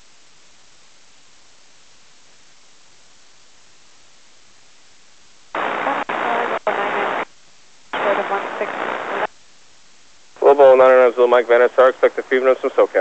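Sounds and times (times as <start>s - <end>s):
clear radio speech: 5.6s - 7.2s, 8.0s - 9.3s, 10.4s - 13.0s
radio voice in static: 5.6s - 7.2s, 8.0s - 9.3s, 10.4s - 13.0s.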